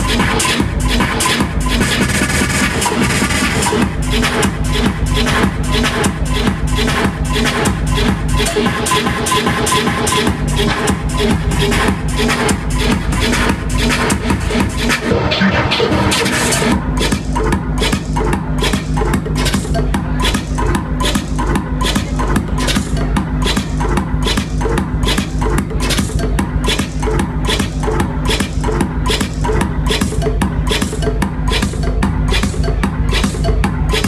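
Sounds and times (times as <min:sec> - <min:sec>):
electronic dance music: 0:00.0 - 0:34.0.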